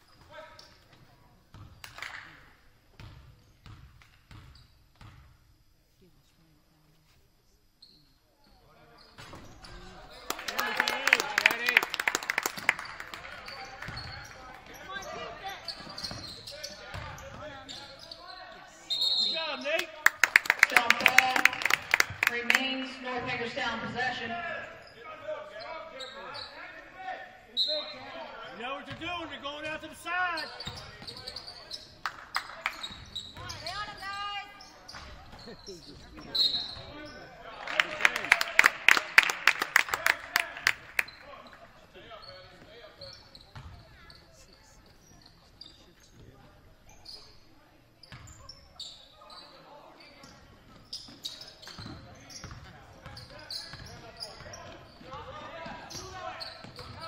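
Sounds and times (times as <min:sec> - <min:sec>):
players and spectators voices: 0:05.9 - 0:57.0.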